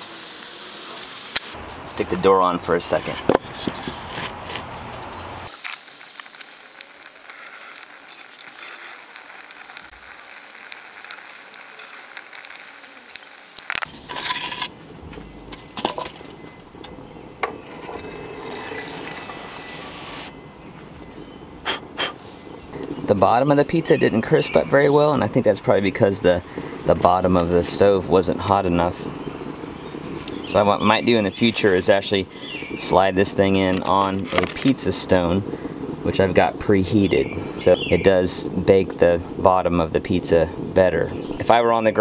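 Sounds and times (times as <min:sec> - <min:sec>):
scrape: 0:02.9 - 0:05.8, 0:14.1 - 0:14.7, 0:17.6 - 0:20.3.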